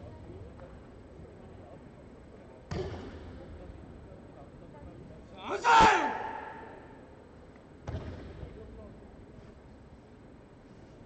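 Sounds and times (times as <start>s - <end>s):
sharp thump echoing in hall: 5.7s - 7.0s.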